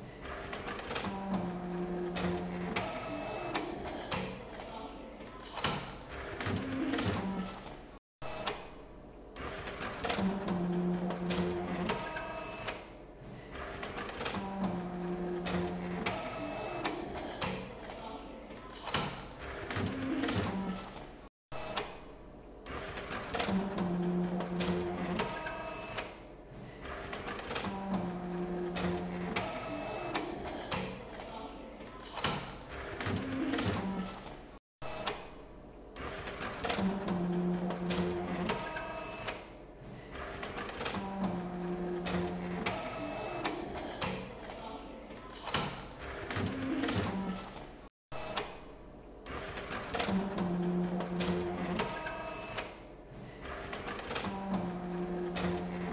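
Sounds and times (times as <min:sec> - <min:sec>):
printer motor whirring: 0:00.2 - 0:04.6, 0:09.4 - 0:13.0, 0:13.6 - 0:17.9, 0:22.6 - 0:31.2, 0:36.0 - 0:39.6, 0:40.2 - 0:44.5, 0:49.2 - 0:55.9.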